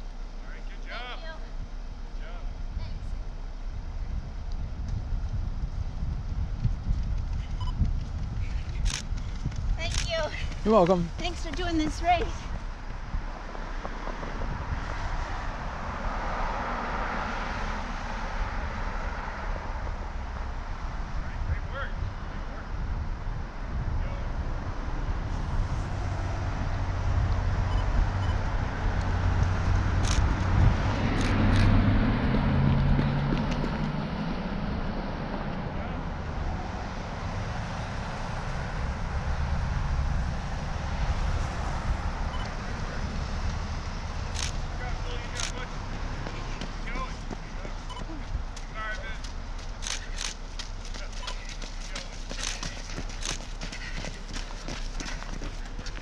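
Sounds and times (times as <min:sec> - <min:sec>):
steady road noise: 0:00.0 - 0:56.0
car engine passing: 0:08.4 - 0:21.4, 0:22.1 - 0:56.0.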